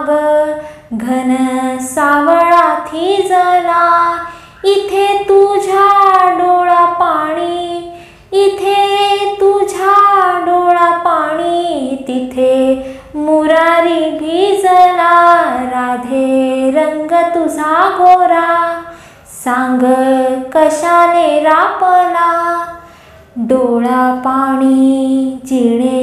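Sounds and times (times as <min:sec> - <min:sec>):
high voice singing: 0:23.4 - 0:26.0.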